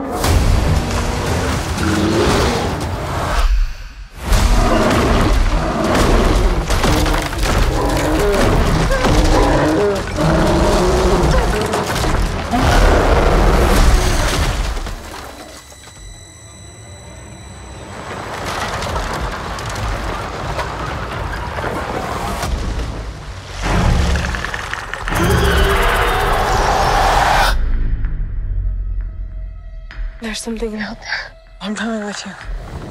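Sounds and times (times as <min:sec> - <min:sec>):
dramatic trailer music: 0:00.0 - 0:15.4, 0:22.3 - 0:32.9.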